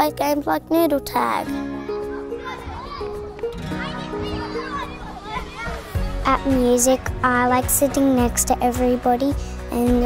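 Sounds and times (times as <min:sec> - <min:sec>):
children shouting: 0:01.5 - 0:06.6.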